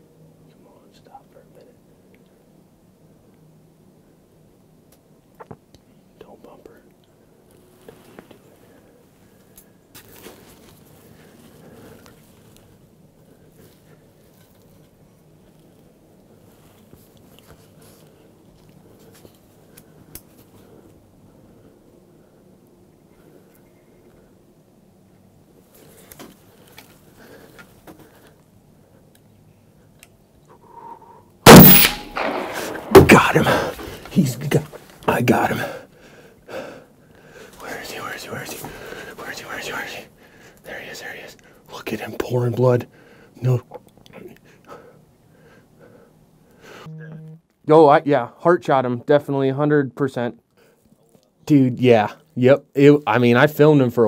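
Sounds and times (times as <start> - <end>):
faint whispering: 0.5 - 1.8, 6.2 - 6.9, 37.6 - 42.4
loud gunshot: 31.5 - 33.9
person speaking: 32.9 - 35.8, 46.9 - 47.4.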